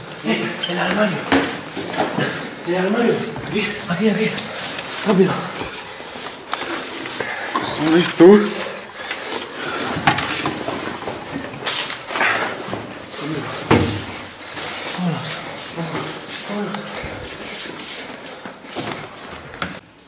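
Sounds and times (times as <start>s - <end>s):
scuffling and rustling: 0.0s - 19.8s
breathy voice sounds: 2.1s - 19.8s.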